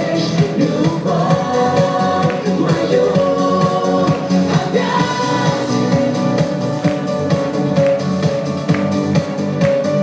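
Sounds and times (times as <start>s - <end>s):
pop song with sung vocals: 0.0s - 7.4s.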